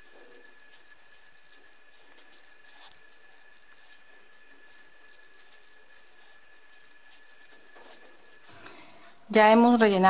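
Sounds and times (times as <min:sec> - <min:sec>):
soft rustling of fabric and stuffing: 0:00.0 - 0:10.0
steady hiss: 0:00.0 - 0:10.0.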